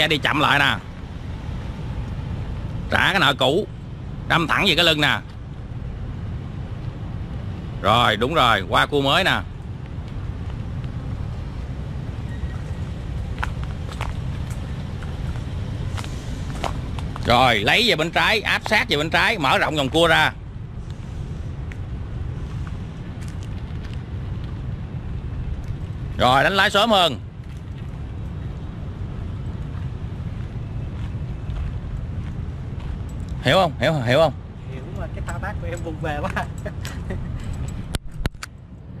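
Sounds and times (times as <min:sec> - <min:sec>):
car engine and tyre rumble: 0:00.0 - 0:39.0
footsteps on pavement: 0:09.7 - 0:11.3, 0:12.5 - 0:17.4, 0:20.9 - 0:24.8, 0:27.4 - 0:33.4
man laughing: 0:36.1 - 0:37.6.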